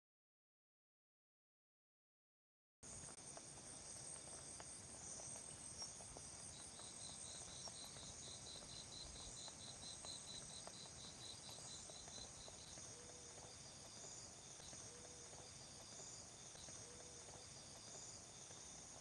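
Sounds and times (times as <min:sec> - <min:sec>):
insects droning: 0:02.8 - 0:19.0.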